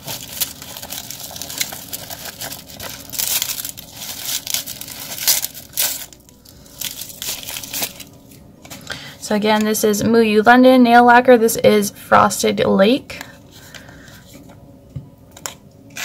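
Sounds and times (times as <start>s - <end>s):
plastic wrapping crinkling: 0.0s - 8.8s.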